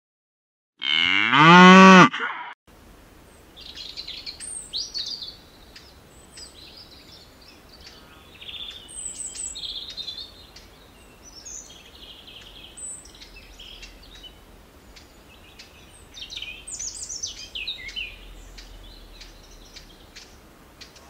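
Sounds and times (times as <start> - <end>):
cow mooing: 0.8 - 2.3
songbird chirping: 2.8 - 21.0.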